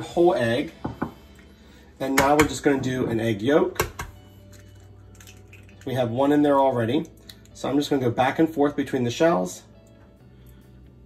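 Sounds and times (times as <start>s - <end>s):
eggshell cracking: 3.8s - 6.0s.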